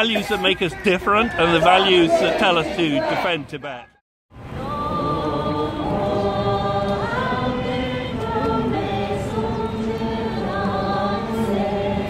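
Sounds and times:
crowd singing together: 0:00.0 - 0:03.8, 0:04.4 - 0:12.0.

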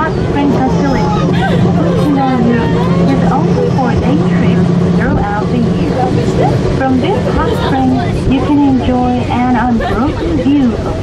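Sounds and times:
recorded guide announcement: 0:00.0 - 0:10.8
people talking: 0:00.0 - 0:11.0
steady low hum: 0:00.0 - 0:11.0.

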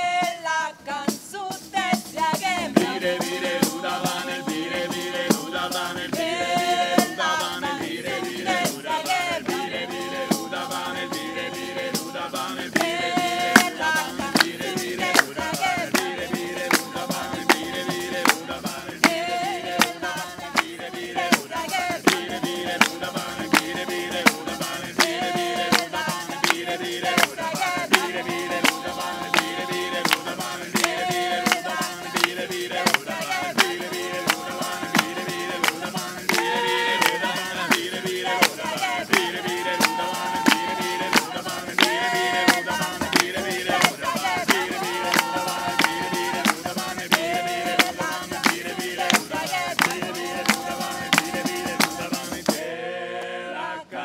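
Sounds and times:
voices singing in harmony: 0:00.0 - 0:54.0
frame drum with jingles: 0:01.1 - 0:52.6
hand claps: 0:02.8 - 0:52.6.

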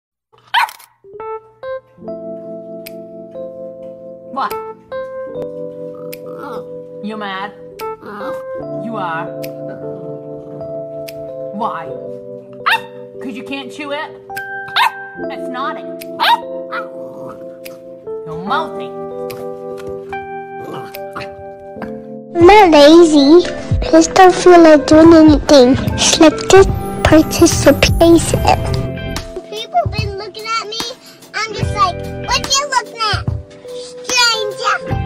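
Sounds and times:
puppy barking: 0:00.4 - 0:00.9, 0:12.6 - 0:13.1, 0:14.6 - 0:15.1, 0:16.2 - 0:17.0
high-pitched vocal sound: 0:22.4 - 0:28.9.

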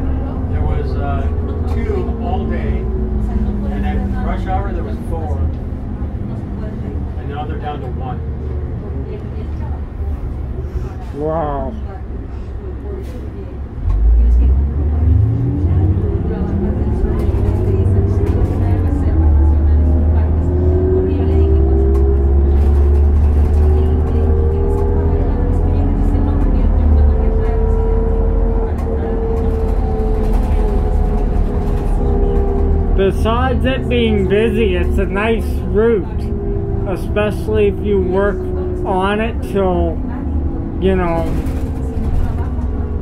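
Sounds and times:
bus diesel engine revving: 0:00.0 - 0:43.0
engine whine climbing in pitch: 0:29.8 - 0:42.0.

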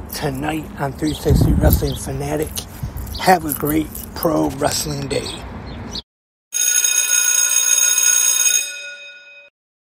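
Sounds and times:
bright bell ringing: 0:06.6 - 0:09.5.

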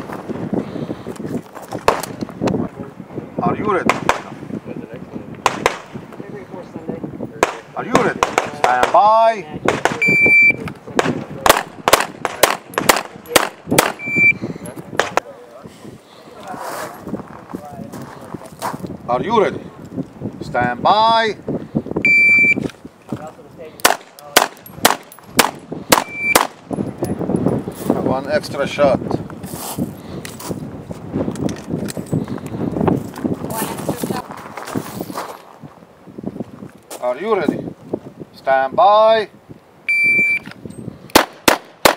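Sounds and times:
pistol shots: 0:03.9 - 0:04.3, 0:05.4 - 0:06.0, 0:11.0 - 0:14.1, 0:23.8 - 0:26.6, 0:41.1 - 0:41.9
people talking: 0:06.2 - 0:11.6, 0:14.6 - 0:19.8, 0:23.1 - 0:24.5, 0:33.5 - 0:34.3
shot timer beep: 0:10.0 - 0:10.6, 0:14.0 - 0:14.4, 0:22.1 - 0:22.6, 0:26.0 - 0:26.4, 0:39.9 - 0:40.5.

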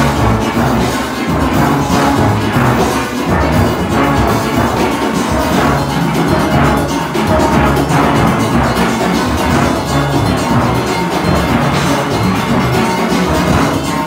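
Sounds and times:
deep bass steelpan notes: 0:00.0 - 0:14.0
steel band playing: 0:00.0 - 0:14.0.

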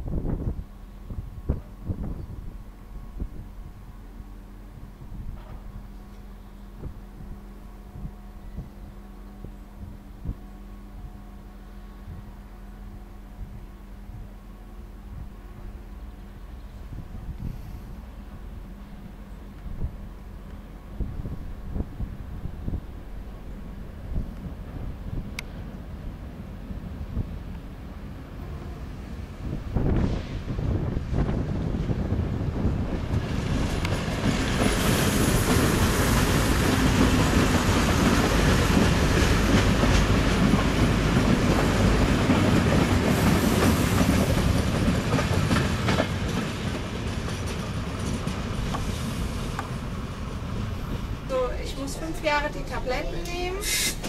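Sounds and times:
train running past: 0:00.0 - 0:54.0.

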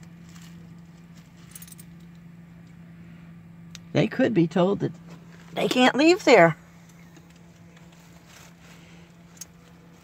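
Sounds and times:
faint low hum: 0:00.0 - 0:10.0
light metallic jingle: 0:01.1 - 0:02.2.

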